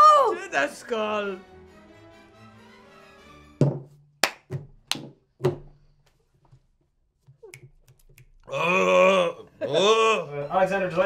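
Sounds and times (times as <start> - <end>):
sharp knocks on tabletop: 3.6 - 5.7
faint background music: 8.5 - 11.0.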